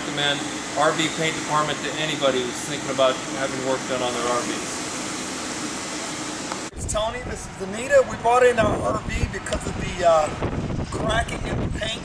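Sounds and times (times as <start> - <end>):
ventilation hiss: 0.0 - 12.0
wind buffeting microphone: 6.7 - 12.0.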